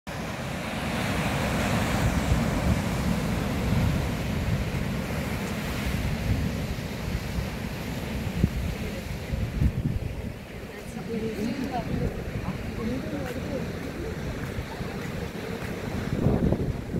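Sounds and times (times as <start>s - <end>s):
surf breaking over rocks: 0.1s - 16.9s
wind buffeting microphone: 0.4s - 16.9s.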